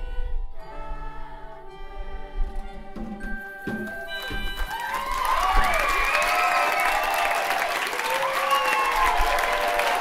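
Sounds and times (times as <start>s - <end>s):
audience whooping and cheering: 3.9s - 10.0s.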